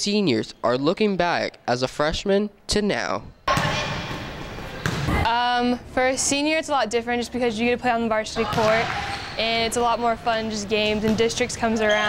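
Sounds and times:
noisy echoing gym: 0:03.4 - 0:12.0
volleyball being struck: 0:03.5 - 0:05.3
girl speaking: 0:05.3 - 0:08.8.

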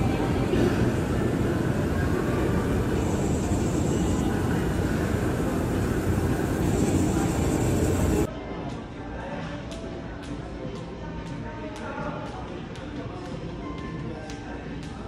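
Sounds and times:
escalator rumbling: 0:00.0 - 0:08.3
faint high whine: 0:00.0 - 0:08.3.

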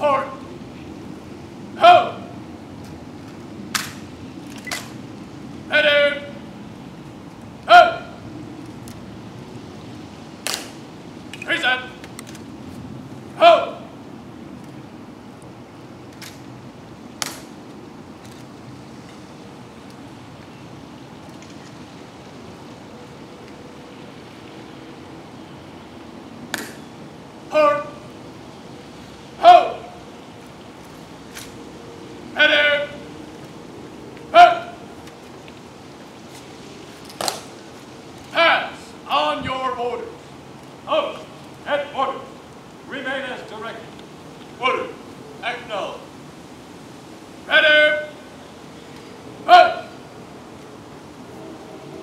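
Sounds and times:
shouted drill commands: 0:01.8 - 0:02.4, 0:05.7 - 0:06.4, 0:07.7 - 0:08.2, 0:11.4 - 0:12.0, 0:13.4 - 0:13.9, 0:27.5 - 0:28.0, 0:29.4 - 0:30.0, 0:32.3 - 0:33.1, 0:34.3 - 0:34.9, 0:38.3 - 0:40.2, 0:40.9 - 0:43.8, 0:44.6 - 0:46.0, 0:47.5 - 0:48.3, 0:49.4 - 0:50.0.

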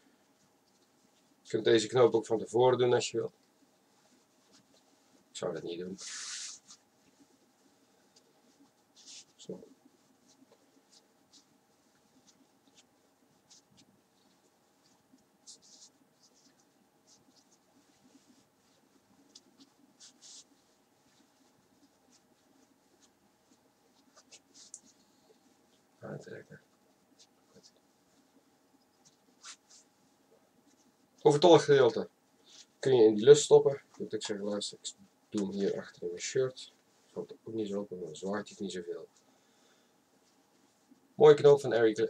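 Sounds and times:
fabric rustling: 0:00.0 - 0:42.0.

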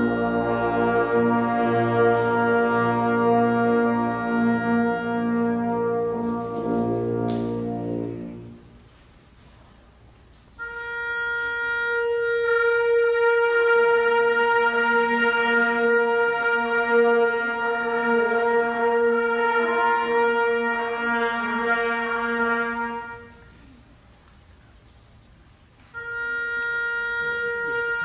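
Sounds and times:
wind band sustained chord: 0:00.0 - 0:09.0, 0:10.6 - 0:23.6.

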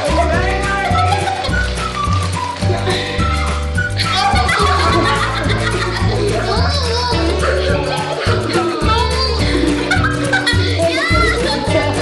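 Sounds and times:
music with pulsing bass: 0:00.0 - 0:12.0.

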